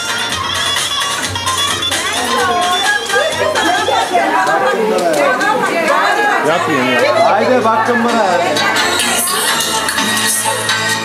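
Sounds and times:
babble of people talking: 0:00.0 - 0:11.0.

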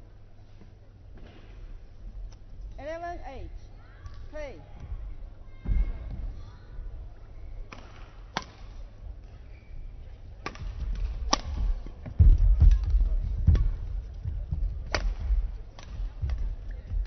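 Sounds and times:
racket striking shuttlecock: 0:07.7 - 0:08.7, 0:10.4 - 0:13.8, 0:14.9 - 0:16.7.

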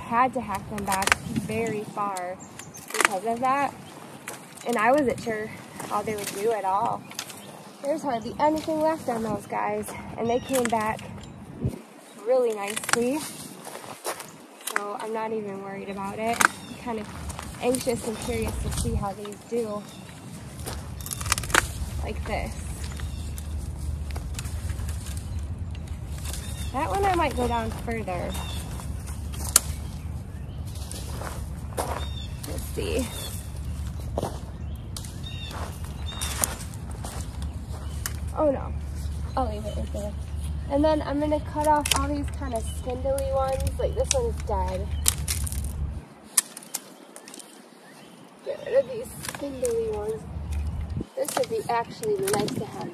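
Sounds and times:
pruning shears cutting stem: 0:00.0 - 0:11.2, 0:12.2 - 0:13.5, 0:14.6 - 0:29.9, 0:39.3 - 0:47.6, 0:48.7 - 0:52.9.

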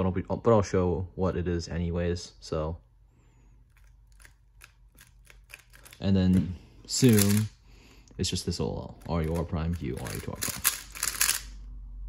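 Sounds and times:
faint plastic clicks of cube turning: 0:03.6 - 0:07.5.

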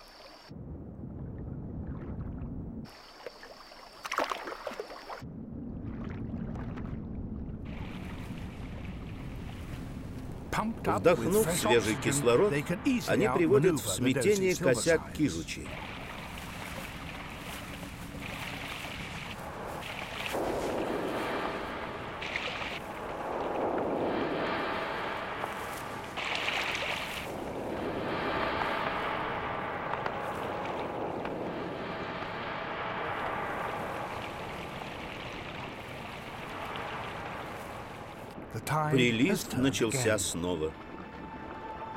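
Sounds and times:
underwater water rushes: 0:00.0 - 0:41.9.

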